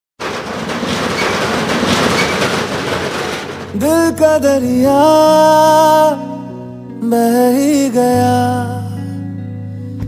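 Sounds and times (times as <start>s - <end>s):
loud rumbling and rattling: 0.2s - 5.2s.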